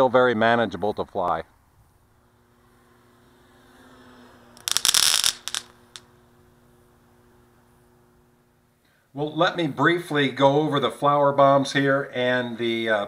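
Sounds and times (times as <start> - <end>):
faint steady hum: 0.1 - 11.4.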